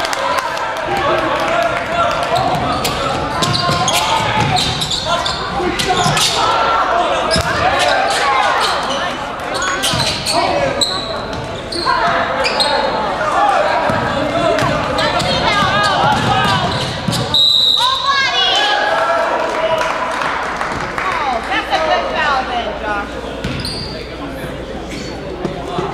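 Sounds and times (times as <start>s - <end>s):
players and spectators shouting: 0.0s - 20.4s
sneakers squeaking on hardwood: 2.4s - 6.4s, 7.3s - 12.9s, 13.9s - 17.9s, 23.4s - 24.1s
basketball dribbling and bouncing: 13.9s - 17.3s
referee's whistle: 17.1s - 18.3s.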